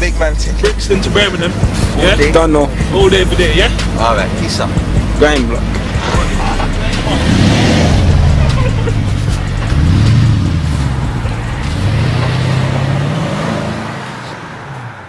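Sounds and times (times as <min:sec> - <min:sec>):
car engine revving: 0:00.0 - 0:15.0.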